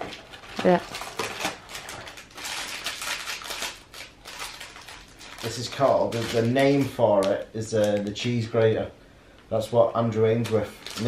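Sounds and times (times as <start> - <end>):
plastic bag and cardboard rustling: 0.0 - 8.5, 10.0 - 11.0.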